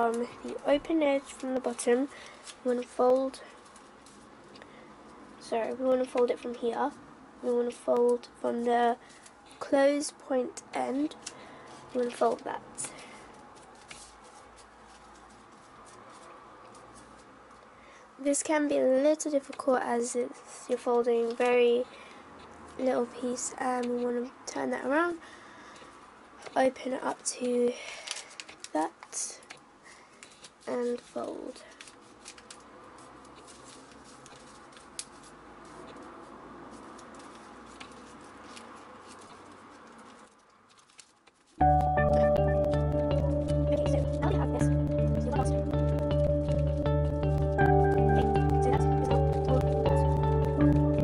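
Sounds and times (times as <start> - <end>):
paper being folded and creased: 11.0 - 17.3, 27.2 - 29.6, 30.2 - 41.7.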